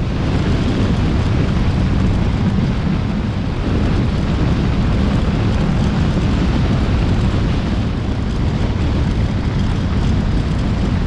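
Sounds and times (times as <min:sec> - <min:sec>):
vehicle road noise: 0:00.0 - 0:11.0
wind buffeting microphone: 0:00.0 - 0:11.0.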